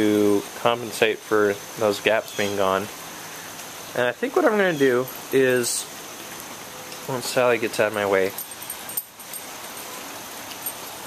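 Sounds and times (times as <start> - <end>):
light rain falling: 0.0 - 11.0.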